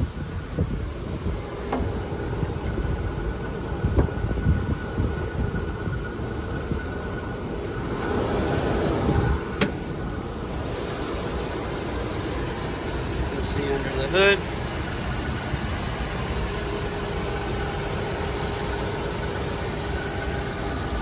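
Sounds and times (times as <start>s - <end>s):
wind on microphone: 0.0s - 7.0s
car engine idling: 0.0s - 21.0s
hood latch click: 9.6s - 9.8s.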